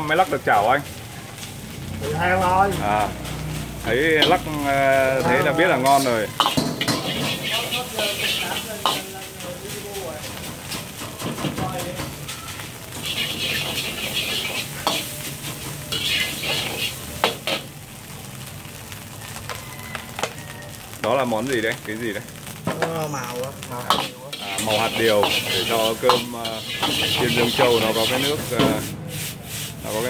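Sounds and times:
rice sizzling in a wok: 0.0 - 30.0
ladle scraping and clanking wok: 2.4 - 18.1, 23.5 - 30.0.

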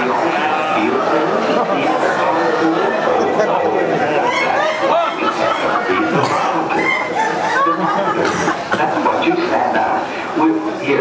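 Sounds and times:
audience chattering: 0.0 - 11.0
cackling laughs: 3.2 - 9.4.

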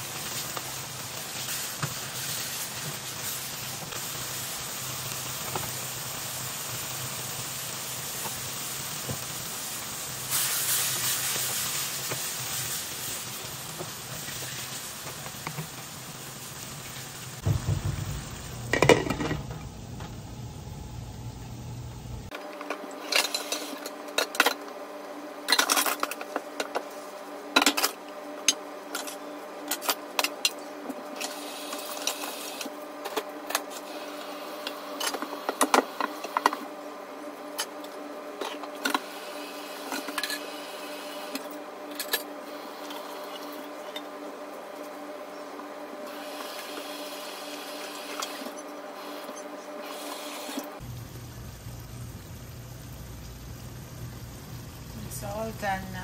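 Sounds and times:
steady hum: 17.3 - 56.0
dishes clinking in sink: 18.7 - 19.4.

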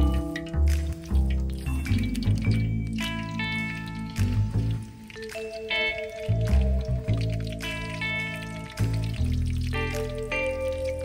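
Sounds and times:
background music with bass line: 0.0 - 11.0
oil sizzling in a pan: 0.0 - 11.0.

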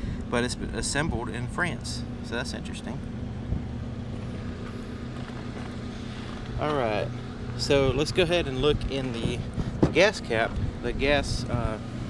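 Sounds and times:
low machine hum: 0.0 - 12.0.

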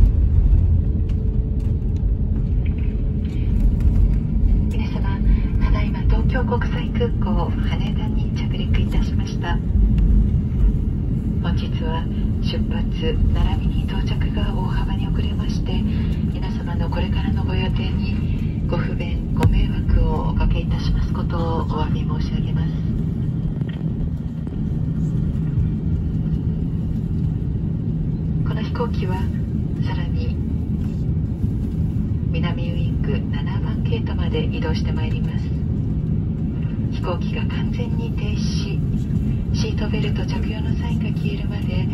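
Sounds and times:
airliner cabin rumble while taxiing: 0.0 - 41.9
constant low hum: 0.0 - 41.9.

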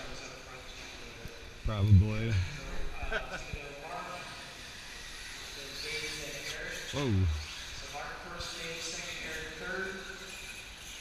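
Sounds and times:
man speaking: 1.7 - 2.6, 7.0 - 7.5
indistinct background talk: 5.5 - 8.0.

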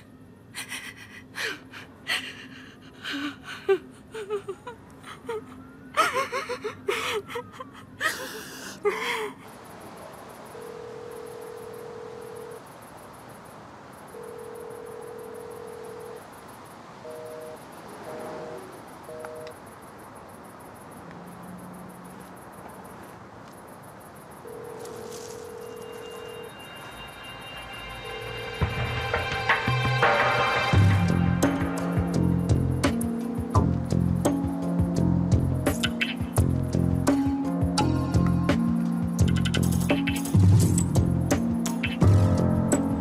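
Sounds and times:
woman sobbing: 0.4 - 9.5
phone ringback tone: 10.5 - 12.6, 14.1 - 16.2, 17.0 - 19.6, 24.4 - 28.9
keypad beeps: 17.0 - 19.6
music: 26.2 - 43.0.

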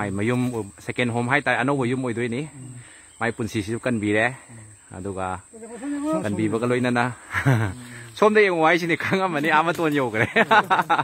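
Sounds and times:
person speaking: 5.5 - 10.9.

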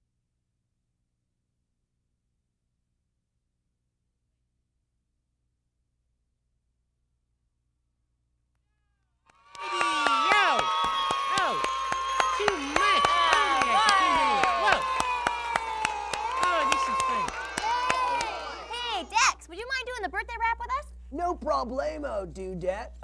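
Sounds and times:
children clapping: 9.3 - 19.2
children cheering and shrieking: 9.5 - 19.3.

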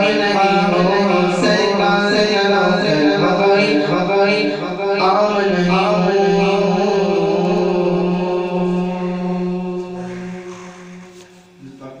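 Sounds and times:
man singing a long note: 0.0 - 11.6.

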